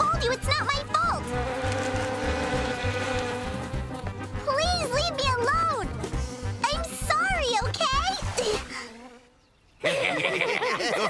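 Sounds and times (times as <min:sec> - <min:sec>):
insects buzzing: 0:01.2 - 0:04.5, 0:06.1 - 0:10.6.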